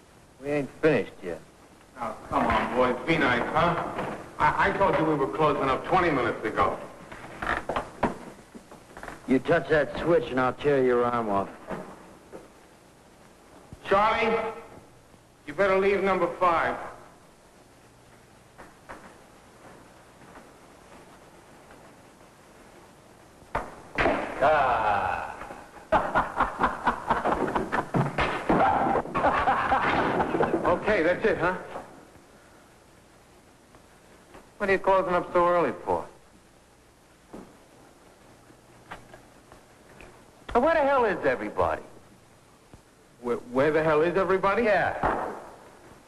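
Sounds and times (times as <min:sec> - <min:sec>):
people speaking: 0:00.4 - 0:06.9, 0:09.3 - 0:11.6, 0:13.8 - 0:14.7, 0:15.5 - 0:16.9, 0:24.4 - 0:25.6, 0:30.4 - 0:31.8, 0:34.6 - 0:36.2, 0:40.5 - 0:41.9, 0:43.2 - 0:45.0
men laughing loudly: 0:24.4 - 0:28.0, 0:28.8 - 0:30.8.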